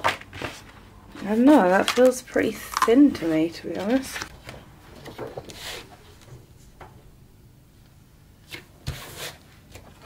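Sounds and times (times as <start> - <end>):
paper rustling: 0.0 - 2.2, 3.2 - 6.4.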